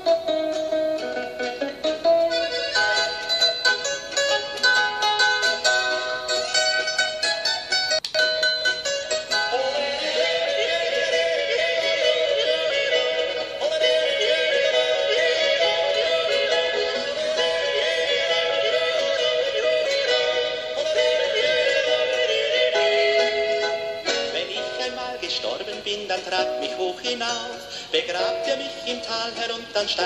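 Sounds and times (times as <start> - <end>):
musical accompaniment: 0.0 - 30.0
man yodelling: 9.5 - 23.4.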